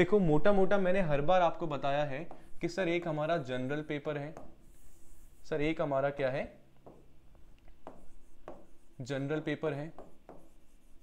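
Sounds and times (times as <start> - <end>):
stylus tapping and scratching on screen: 1.5 - 11.0.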